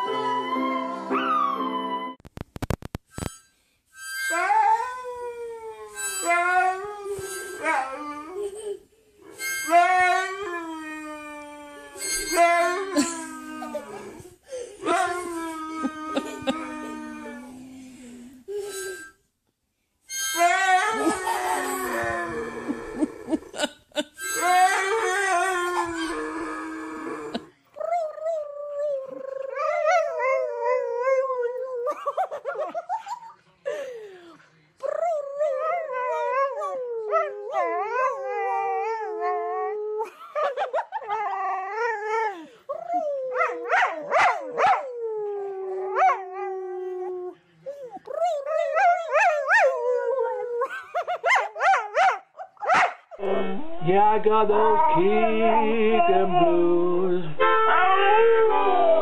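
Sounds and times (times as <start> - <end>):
harmonica playing: 3.1 - 5.1, 5.8 - 10.5, 11.9 - 13.4, 18.5 - 19.2, 20.1 - 26.2, 57.4 - 58.1
dog howling: 24.4 - 27.4, 54.5 - 56.7, 57.4 - 59.0.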